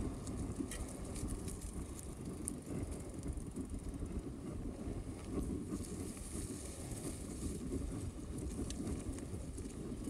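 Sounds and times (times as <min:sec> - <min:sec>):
bike tyres rumbling on dirt: 0:00.0 - 0:10.0
wind buffeting microphone: 0:00.0 - 0:10.0.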